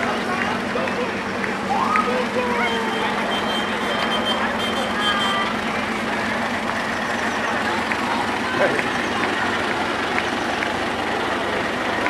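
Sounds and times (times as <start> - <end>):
vintage vehicle engines passing: 0.0 - 12.0.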